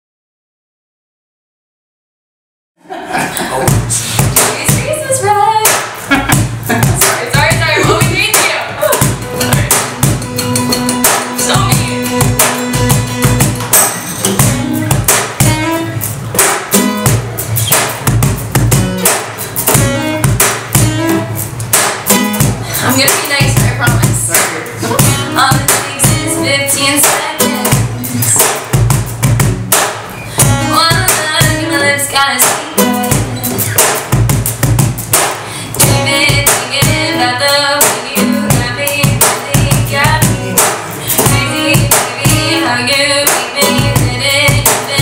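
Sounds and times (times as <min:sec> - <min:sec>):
acoustic guitars strumming: 0:02.9 - 0:45.0
woman singing: 0:04.2 - 0:05.8, 0:06.8 - 0:10.0, 0:11.1 - 0:12.8, 0:22.7 - 0:28.5, 0:30.4 - 0:33.7, 0:35.7 - 0:45.0
cajon slapped by hand: 0:05.6 - 0:07.2, 0:12.4 - 0:15.6, 0:16.3 - 0:23.4, 0:27.0 - 0:31.6, 0:32.4 - 0:37.0, 0:37.8 - 0:42.4, 0:43.2 - 0:45.0.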